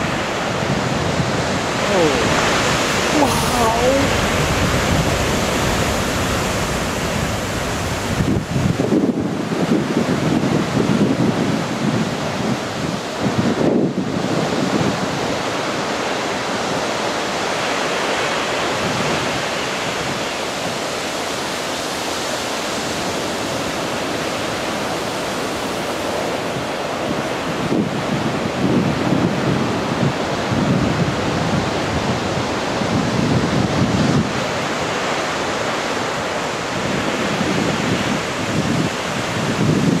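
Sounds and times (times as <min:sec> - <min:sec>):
ocean waves crashing on rocks: 0:00.0 - 0:40.0
wind rumble on microphone: 0:00.0 - 0:40.0.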